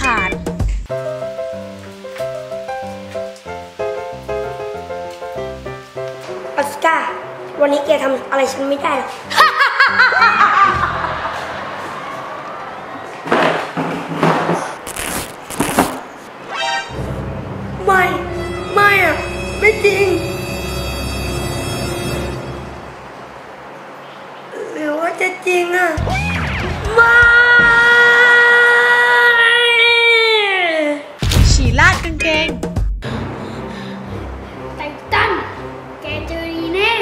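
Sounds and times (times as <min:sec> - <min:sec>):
boy crying loudly: 0:27.0 - 0:31.2.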